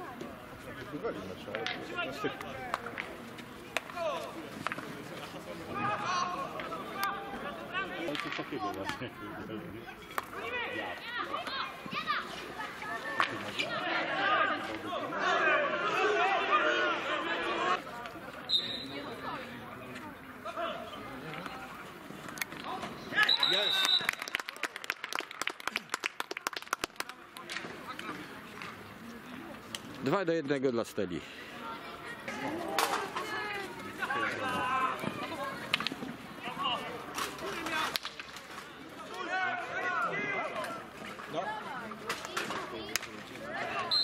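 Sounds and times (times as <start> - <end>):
many voices shouting and chattering: 0.0 - 44.0
players calling out: 0.1 - 24.3, 31.2 - 44.0.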